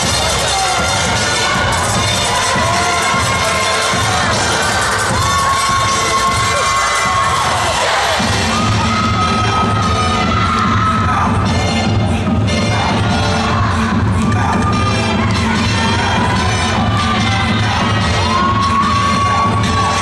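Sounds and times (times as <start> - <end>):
crowd cheering and shouting: 0.0 - 20.0
dance music over sound system: 0.0 - 20.0.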